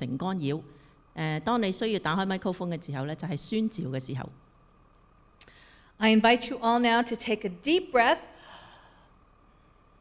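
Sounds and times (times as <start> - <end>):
woman breathing in: 5.4 - 6.0, 8.4 - 9.2.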